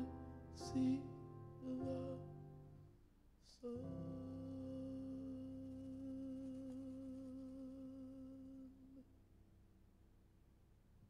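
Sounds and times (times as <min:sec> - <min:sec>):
man singing a low note: 0:00.0 - 0:02.6, 0:03.4 - 0:09.1.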